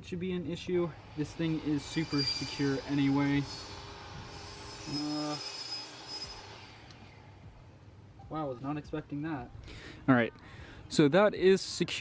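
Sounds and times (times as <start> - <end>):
faint high whine: 0.3 - 9.5
faint background noise: 6.6 - 12.0.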